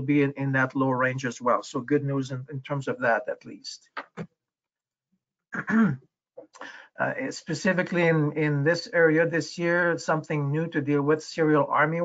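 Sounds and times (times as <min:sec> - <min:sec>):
man clearing his throat: 0:05.6 - 0:06.0.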